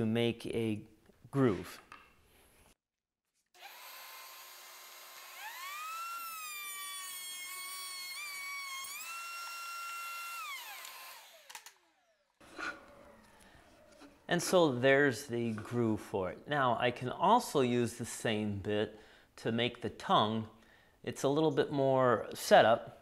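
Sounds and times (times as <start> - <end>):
router whining: 3.6 - 14.2.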